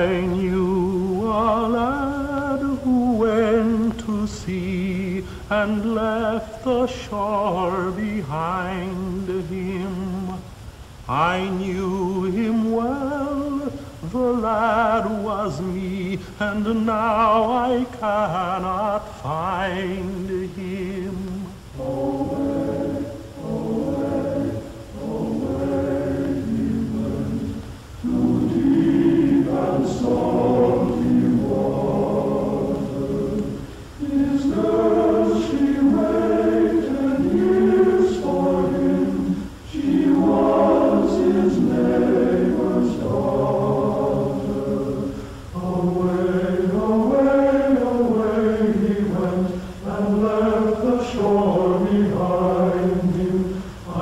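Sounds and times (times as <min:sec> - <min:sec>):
choir singing slow melody: 0:00.0 - 0:54.0.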